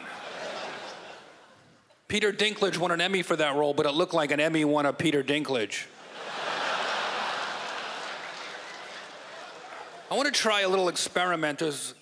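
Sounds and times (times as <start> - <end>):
audience laughing and applauding: 0.0 - 1.6, 6.0 - 10.4.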